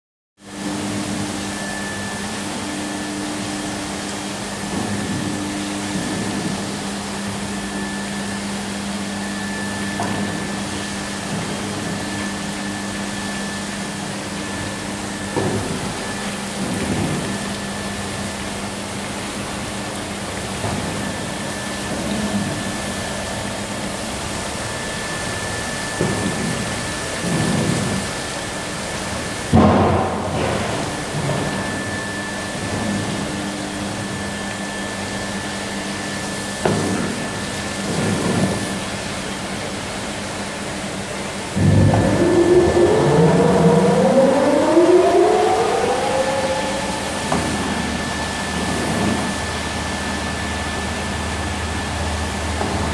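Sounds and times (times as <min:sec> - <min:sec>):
rising whine: 0:00.5 - 0:36.8, 0:41.0 - 0:52.9
machine motor hum: 0:39.8 - 0:52.9
high steady tone: 0:41.6 - 0:48.6.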